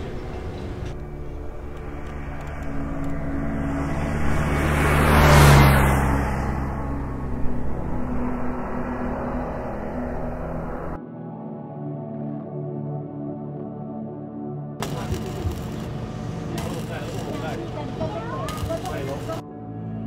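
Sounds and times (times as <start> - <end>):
steady low hum: 0.0 - 11.0
rising and falling whoosh: 0.9 - 11.0.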